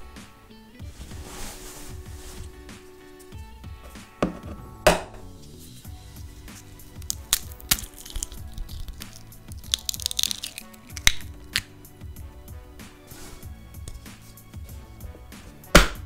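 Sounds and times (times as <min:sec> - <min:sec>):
background music: 0:00.0 - 0:16.0
egg knocking on hard surface: 0:04.2 - 0:05.1
eggshell crackling: 0:04.9 - 0:11.8.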